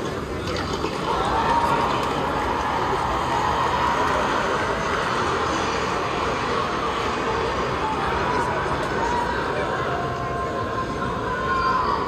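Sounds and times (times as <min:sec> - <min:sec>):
outdoor crowd din: 0:00.0 - 0:12.0.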